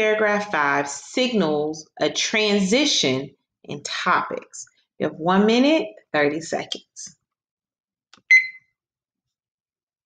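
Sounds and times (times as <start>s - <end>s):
short high electronic beep: 8.3s - 8.6s.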